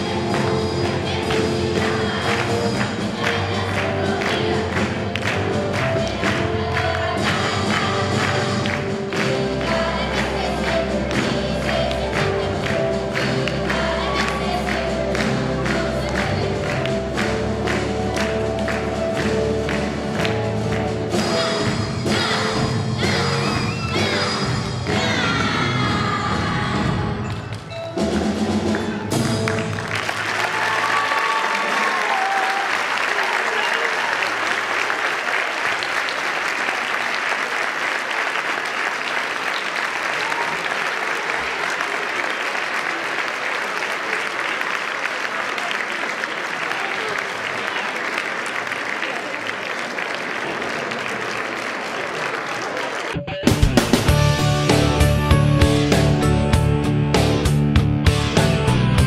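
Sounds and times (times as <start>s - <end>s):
string orchestra and choir: 0.0s - 17.8s
audience applause: 0.0s - 20.8s, 28.7s - 53.3s.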